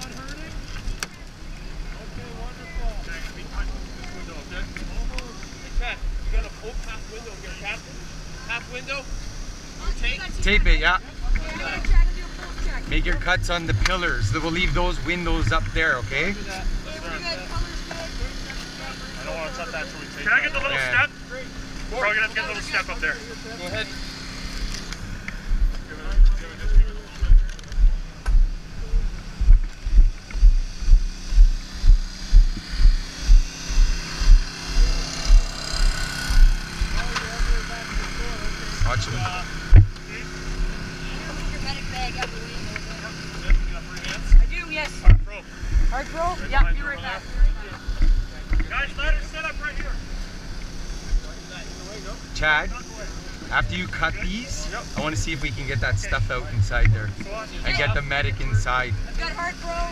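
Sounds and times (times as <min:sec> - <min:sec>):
small engine running: 0:00.0 - 0:59.9
strong low thumps: 0:12.9 - 0:16.8, 0:25.3 - 0:38.1, 0:38.7 - 0:40.0, 0:43.5 - 0:48.3, 0:55.0 - 0:59.1
faint voices: 0:25.3 - 0:59.9.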